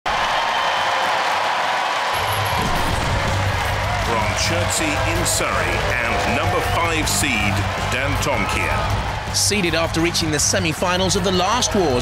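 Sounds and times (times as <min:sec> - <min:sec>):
crowd cheering and applauding: 0:00.0 - 0:12.0
music: 0:02.1 - 0:12.0.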